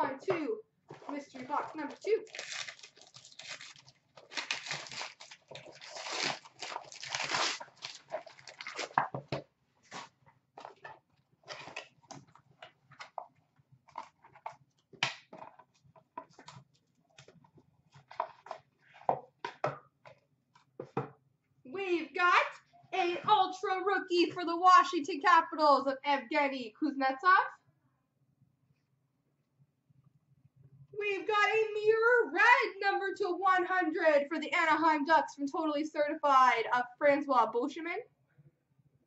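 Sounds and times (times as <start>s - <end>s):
wrapping paper tearing: 1.8s - 9.0s.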